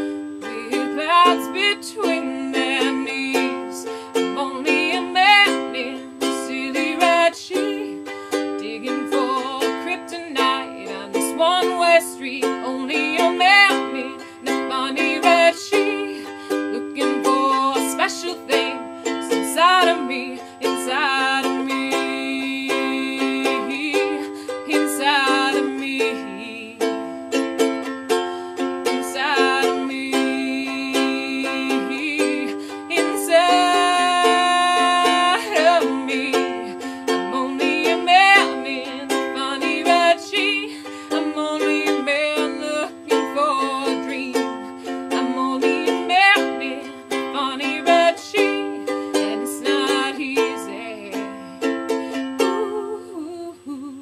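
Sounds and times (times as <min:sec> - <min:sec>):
ukulele strumming chords: 0:00.0 - 0:53.3
woman singing without words: 0:00.0 - 0:54.0.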